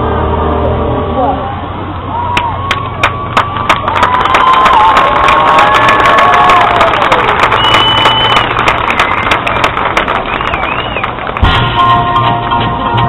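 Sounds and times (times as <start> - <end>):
crowd cheering: 1.9 - 12.0
marching band playing: 11.3 - 13.0.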